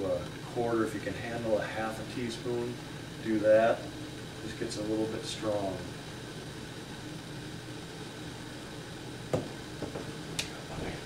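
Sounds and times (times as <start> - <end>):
kettle rushing near boil: 0.0 - 11.0.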